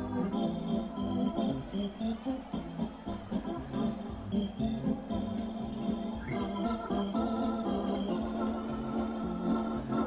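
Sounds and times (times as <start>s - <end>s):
electric organ melody: 0.0s - 10.0s.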